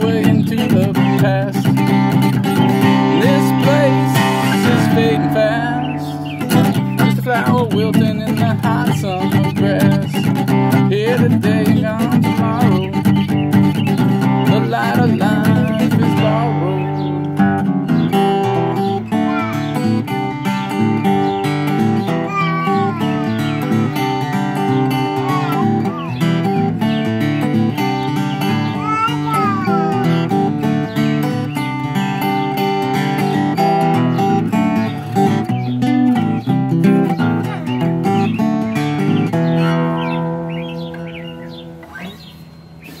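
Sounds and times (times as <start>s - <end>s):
acoustic guitar playing: 0.0s - 43.0s.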